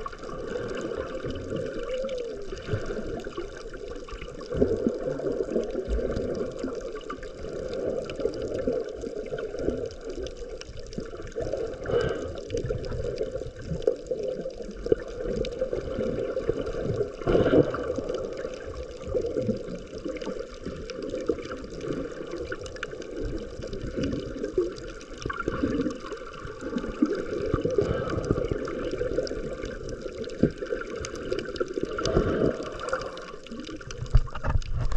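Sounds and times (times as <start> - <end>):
muffled churning water underwater: 0.0 - 34.9.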